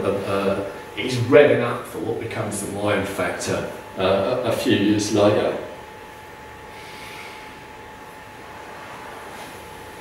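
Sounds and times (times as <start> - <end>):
thin high whine: 0.0 - 10.0.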